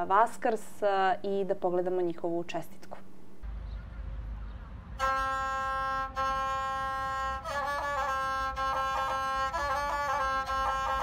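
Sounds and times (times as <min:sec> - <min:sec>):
bowed fiddle note: 0:05.0 - 0:11.0.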